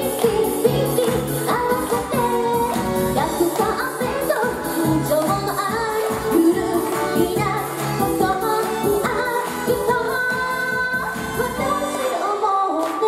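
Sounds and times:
up-tempo pop music: 0.0 - 13.0
woman singing into a microphone: 0.0 - 13.0.

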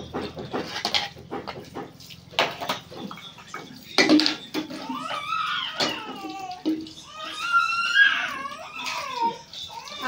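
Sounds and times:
dishes clattering: 2.4 - 5.1.

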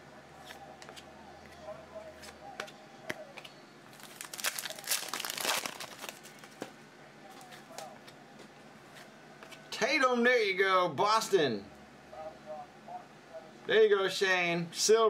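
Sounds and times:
foil wrapper crinkling and tearing: 3.9 - 6.5.

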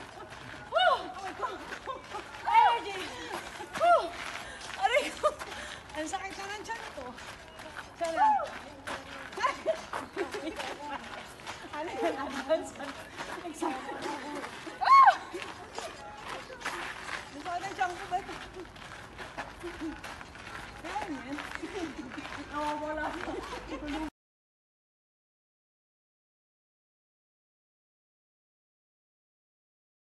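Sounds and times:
women's voices: 0.0 - 18.7, 20.8 - 24.1
women calling out and chattering: 0.0 - 24.1.

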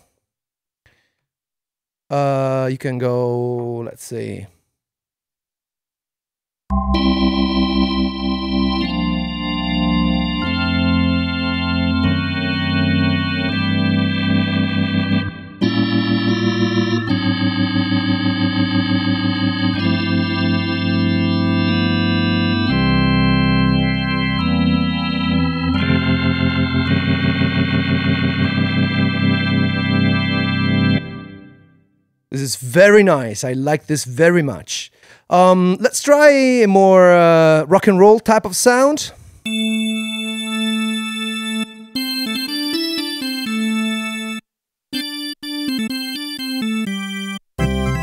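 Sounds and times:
organ playing sustained chords: 6.7 - 31.9, 39.5 - 44.4, 45.0 - 48.0.

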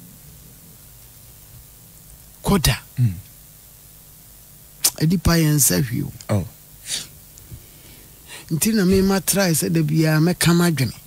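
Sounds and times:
sharp hiss: 4.8 - 9.2.

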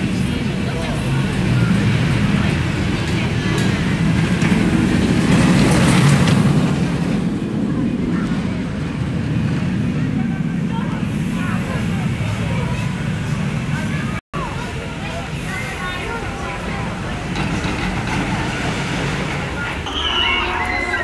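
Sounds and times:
people's voices: 0.0 - 21.0
roller coaster rumbling on track: 0.0 - 21.0.

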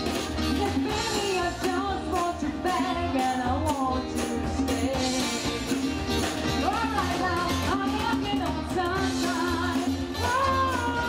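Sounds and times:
woman singing into microphone: 0.0 - 5.8, 6.6 - 11.0
acoustic guitar: 0.0 - 11.0.

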